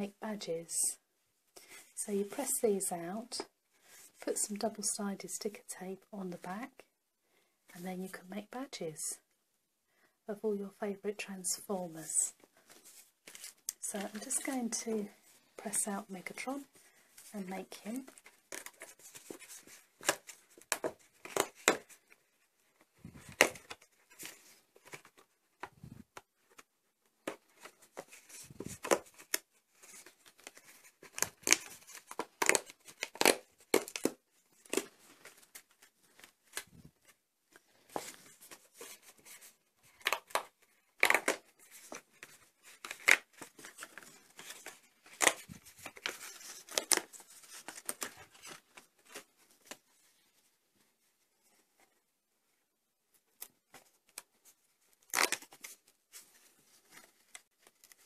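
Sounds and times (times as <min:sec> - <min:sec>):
cardboard pieces snapping and tearing: 0:31.1 - 0:34.9, 0:40.0 - 0:41.4.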